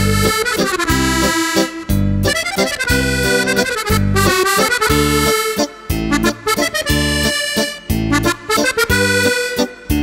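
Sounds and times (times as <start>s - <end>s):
piano accordion playing lively tune: 0.0s - 10.0s.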